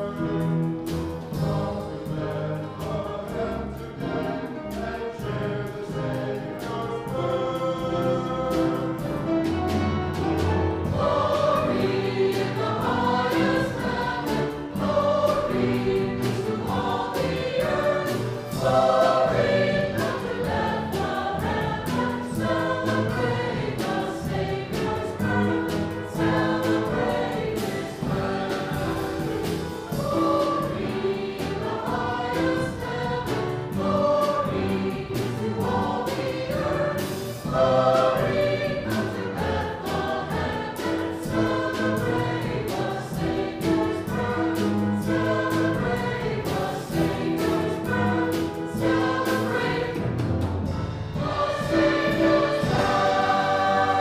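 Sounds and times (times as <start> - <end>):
choir singing: 0.0 - 54.0
instrumental accompaniment: 0.0 - 54.0.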